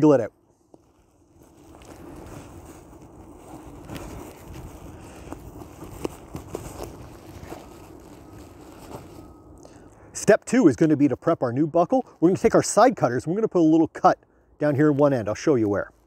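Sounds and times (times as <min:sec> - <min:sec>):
buckle wiggled through webbing: 0:00.7 - 0:09.6
wind rumble on microphone: 0:01.4 - 0:09.2.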